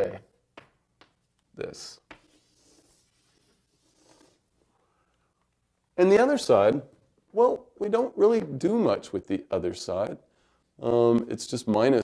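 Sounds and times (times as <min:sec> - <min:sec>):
pen tapping paper: 0:02.0 - 0:02.8
pen scratching while writing: 0:02.2 - 0:04.4.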